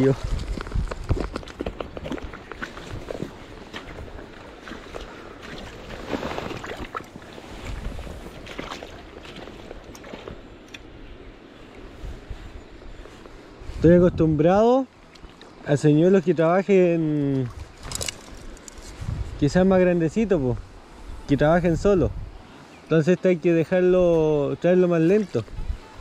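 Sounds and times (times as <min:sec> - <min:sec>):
footsteps wading through water: 0:00.0 - 0:10.7, 0:14.9 - 0:15.6.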